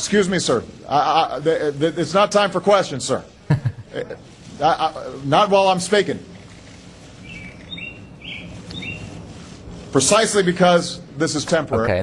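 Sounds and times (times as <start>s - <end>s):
small birds chirping: 6.6s - 9.4s.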